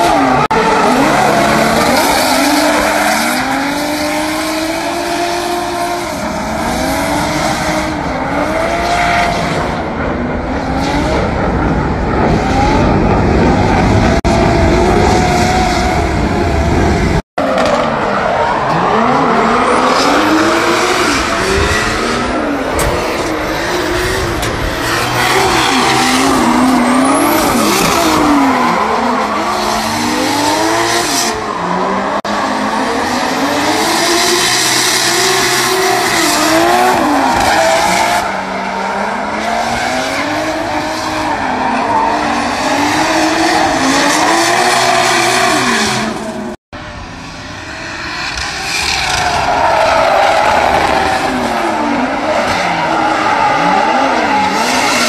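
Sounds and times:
car engines revving: 0.0s - 55.0s
tyres skidding and screeching: 0.0s - 55.0s.

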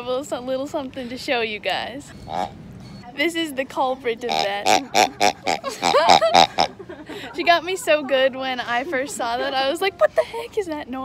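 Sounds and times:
rubber pig toy squealing: 2.2s - 2.6s, 4.3s - 6.7s.

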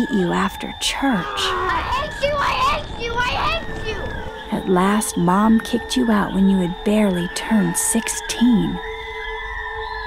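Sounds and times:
faint steady background tone: 0.0s - 10.0s
high-pitched wordless crying: 1.0s - 4.0s.

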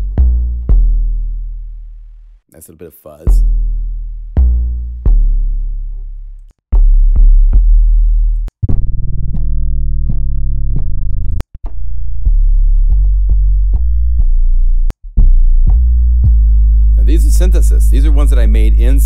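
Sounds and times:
deep synth bass kicks: 0.0s - 2.3s, 3.3s - 19.0s.

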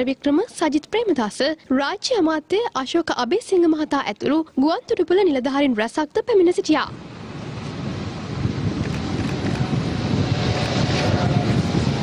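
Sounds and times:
wind buffeting microphone: 6.8s - 12.0s.

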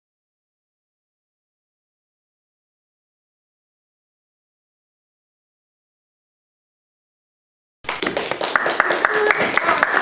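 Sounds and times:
audience applauding: 7.9s - 10.0s.

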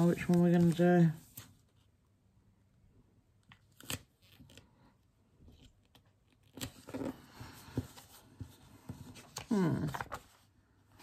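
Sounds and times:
paper rustling: 0.0s - 1.9s, 5.5s - 11.0s.

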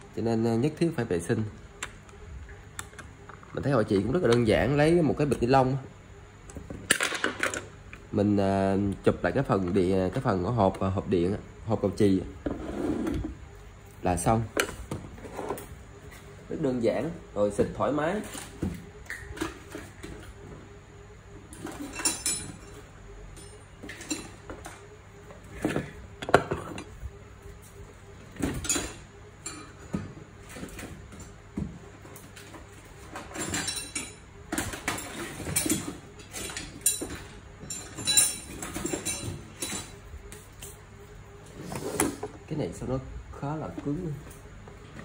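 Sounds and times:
metal parts clinking on a table: 21.8s - 22.8s, 34.9s - 40.0s.

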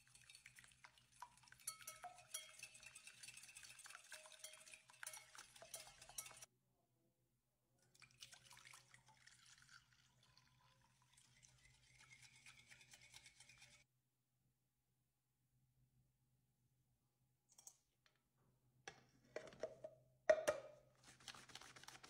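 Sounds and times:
whisk beating in a glass bowl: 0.0s - 6.5s, 11.8s - 13.9s.

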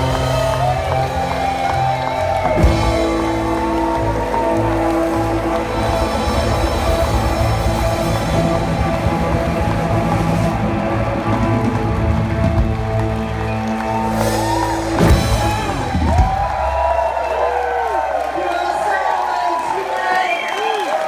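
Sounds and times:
heavy band hits: 0.0s - 17.2s
live rock band playing: 0.0s - 17.8s
audience cheering and whooping: 0.0s - 21.0s.

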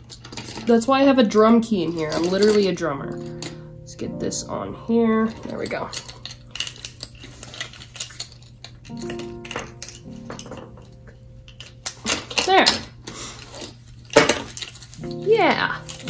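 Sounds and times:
metal keys clinking: 0.0s - 1.0s, 1.7s - 3.9s, 5.2s - 13.0s, 14.0s - 16.0s.

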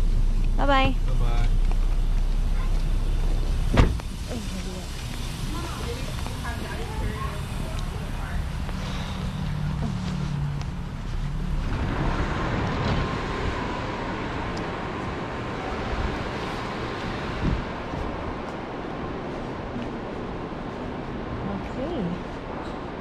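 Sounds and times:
traffic rumble: 0.0s - 23.0s
wind on microphone: 9.6s - 21.5s.

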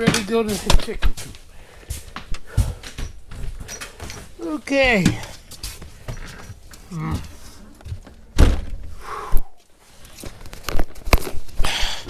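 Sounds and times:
clicks and rustling: 10.0s - 11.6s.

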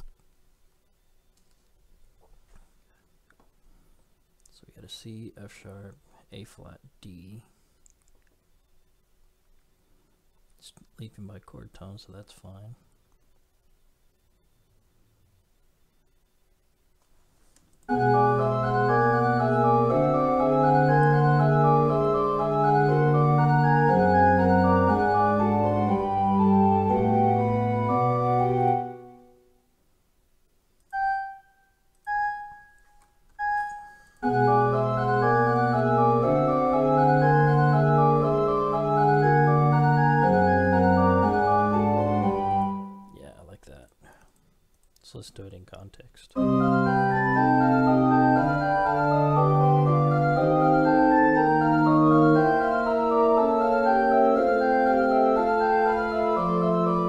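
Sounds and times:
faint clicks: 7.8s - 8.4s
pipe organ fugue: 17.9s - 29.5s, 32.0s - 32.8s, 33.4s - 43.1s, 46.4s - 57.0s.

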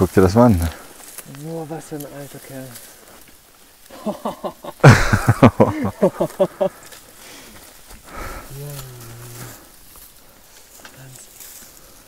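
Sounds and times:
man laughing: 3.9s - 6.8s.

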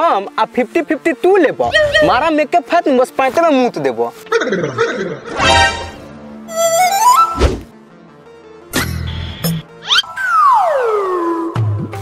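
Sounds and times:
rising whistle-like tone: 9.9s - 11.9s.

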